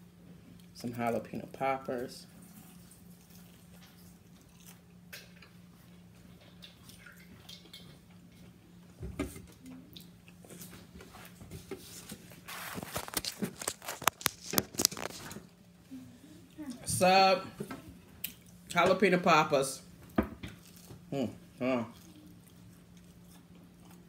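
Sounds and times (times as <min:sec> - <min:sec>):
faint steady hum: 0:00.0 - 0:24.0
biting and chewing crunchy food: 0:02.5 - 0:08.6, 0:12.1 - 0:15.7, 0:20.4 - 0:24.0.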